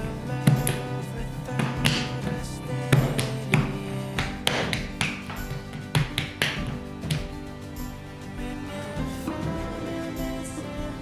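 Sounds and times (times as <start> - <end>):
background music: 0.0 - 11.0
hands slapping clay: 2.9 - 7.3.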